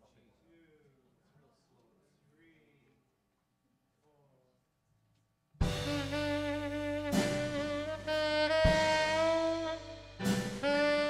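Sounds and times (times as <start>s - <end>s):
drums: 5.6s - 11.0s
horn section playing held notes: 5.6s - 11.0s.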